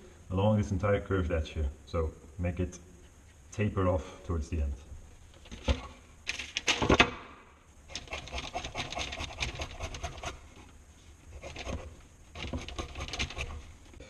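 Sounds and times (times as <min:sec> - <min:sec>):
knife scraping leather: 0:11.3 - 0:13.7.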